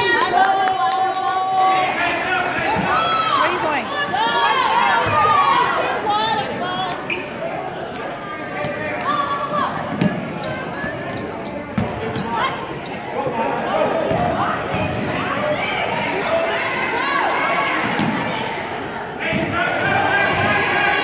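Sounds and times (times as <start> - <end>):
people shouting and chattering: 0.0 - 21.0.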